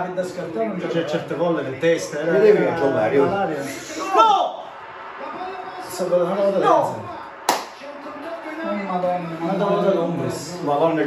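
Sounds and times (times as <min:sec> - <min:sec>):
men's voices: 0:00.0 - 0:11.0
sharp hand smack: 0:07.5 - 0:07.8.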